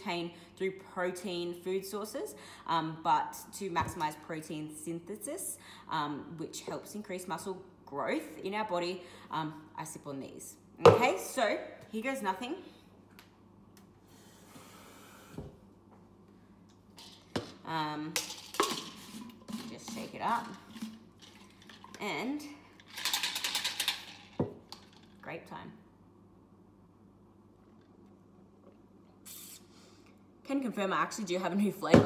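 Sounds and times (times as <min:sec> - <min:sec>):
low steady hum: 0:00.0 - 0:32.0
short hiss: 0:29.3 - 0:29.7.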